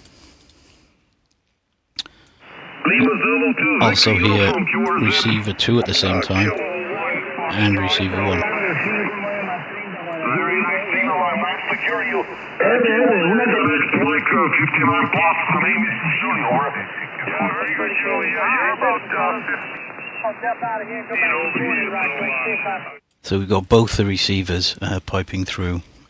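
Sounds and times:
radio voices talking: 2.4 - 25.8.

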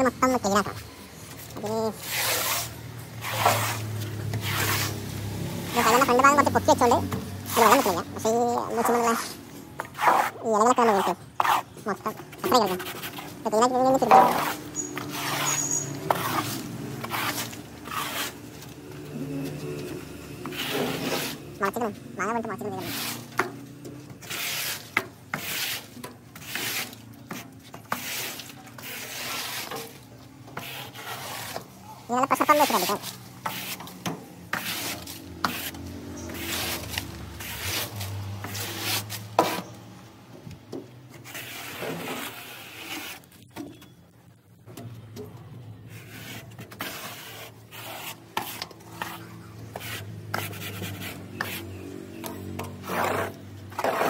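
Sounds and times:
broom sweeping leaves on steel: 1.6 - 11.8, 12.6 - 23.4, 24.2 - 39.8, 41.2 - 43.3, 45.8 - 54.0.

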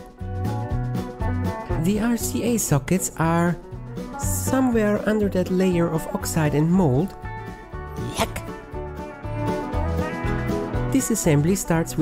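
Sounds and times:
music with held notes and bass: 0.0 - 12.0.

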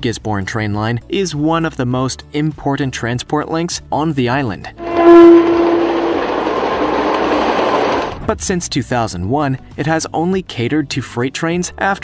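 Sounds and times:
train horn: 4.8 - 8.1
diesel locomotive passing: 4.8 - 8.2.

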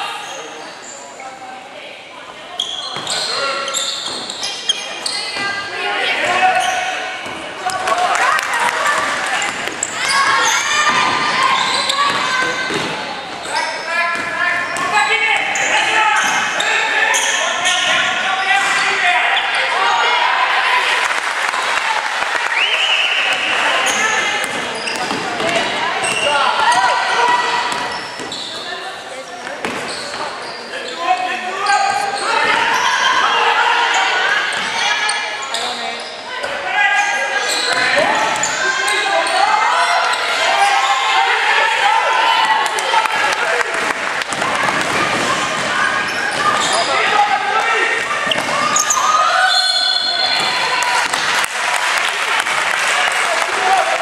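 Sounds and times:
players and spectators shouting: 2.6 - 29.1, 29.9 - 54.0.

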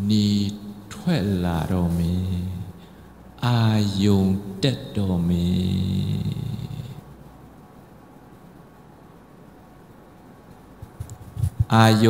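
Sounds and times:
man humming through a microphone: 5.4 - 7.0.

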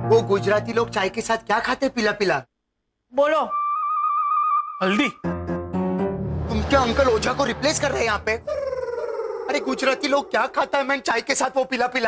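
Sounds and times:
man speaking quickly: 6.5 - 8.6, 9.5 - 12.0.

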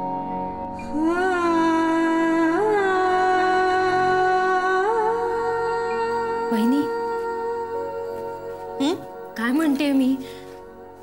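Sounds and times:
soft sustained musical backing: 0.0 - 11.0.

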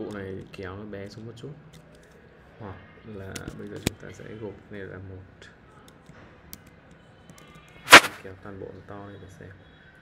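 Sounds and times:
loud sharp noise burst: 7.9 - 8.2.

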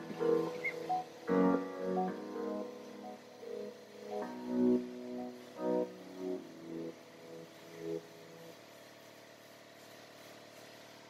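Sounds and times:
background music: 0.0 - 8.2
faint steady hum: 0.0 - 10.7.

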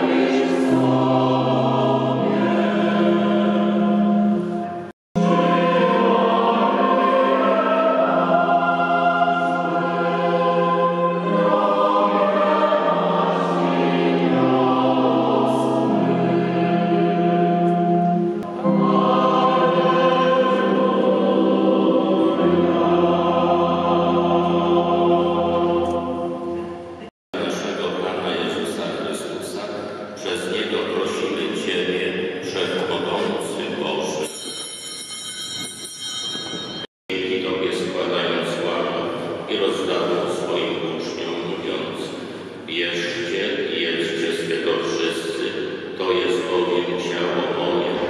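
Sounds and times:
choir singing a hymn: 0.0 - 29.4, 37.8 - 48.0
altar bells jingling: 34.1 - 36.9.

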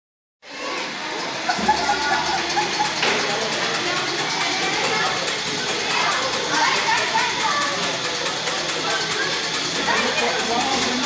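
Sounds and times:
children chattering: 0.4 - 11.0.

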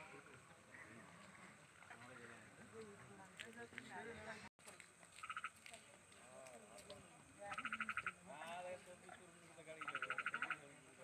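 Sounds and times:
frog pulsed trills: 7.5 - 8.2.

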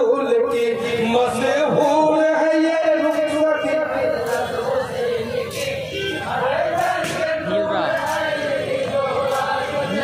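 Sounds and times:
male chorus singing a lament: 0.0 - 10.0.

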